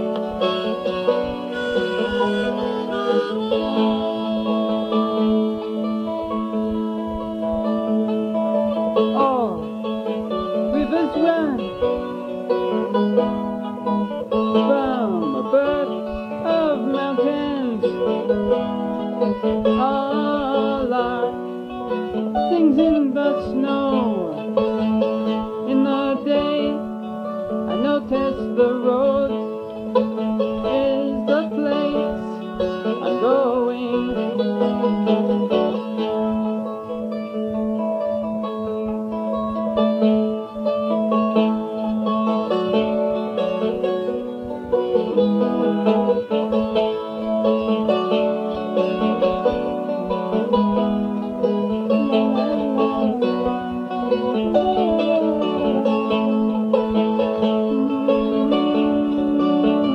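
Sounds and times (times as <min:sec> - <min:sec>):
plucked strings: 0:00.0 - 0:59.9.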